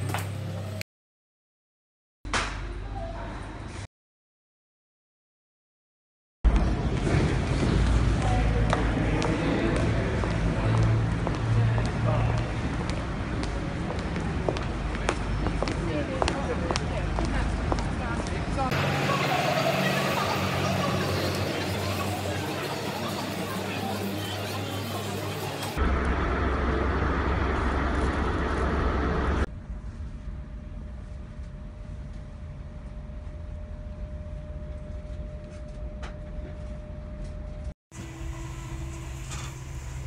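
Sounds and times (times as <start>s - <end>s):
street traffic: 0.0s - 0.8s, 6.5s - 29.5s
low engine hum: 6.5s - 31.2s
passers-by talking: 14.0s - 25.8s.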